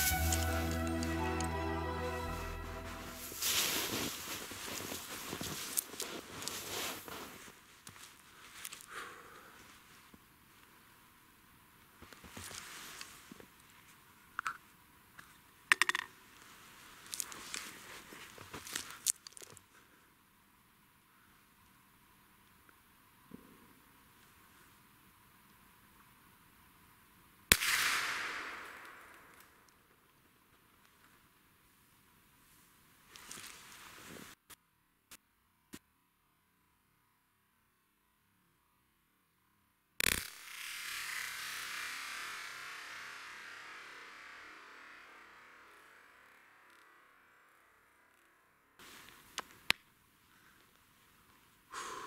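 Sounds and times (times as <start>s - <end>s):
long hiss: 0.0s - 14.2s, 40.2s - 48.2s, 48.8s - 52.0s
rifle shot: 27.5s - 29.3s.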